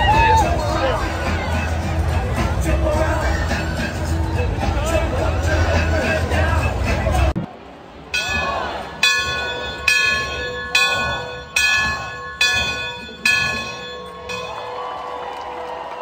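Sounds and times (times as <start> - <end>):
hand bell ringing: 8.2 - 14.8.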